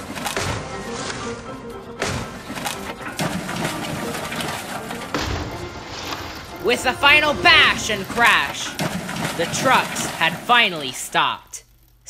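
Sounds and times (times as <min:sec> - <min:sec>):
background music: 0:00.0 - 0:11.7.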